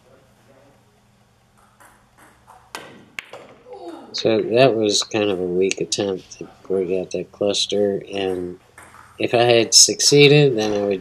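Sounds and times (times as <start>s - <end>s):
pool balls colliding: 1.4s - 7.2s, 7.8s - 11.0s.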